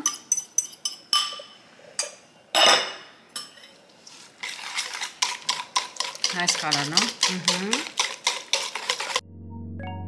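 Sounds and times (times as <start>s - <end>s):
whisk clinking on steel bowl: 4.4s - 9.2s
whisking against steel bowl: 4.4s - 9.2s.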